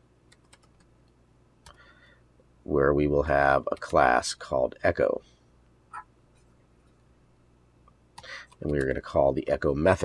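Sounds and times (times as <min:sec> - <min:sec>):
keyboard typing: 0:00.3 - 0:00.9, 0:08.2 - 0:09.0.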